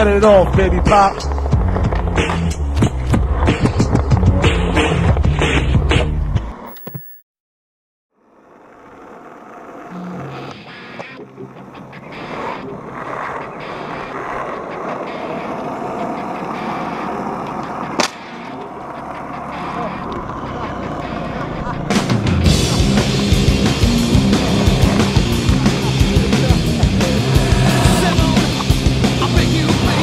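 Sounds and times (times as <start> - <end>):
skateboard wheels rolling on asphalt: 0.0 - 6.7, 8.2 - 30.0
skateboard clack: 8.6 - 22.8.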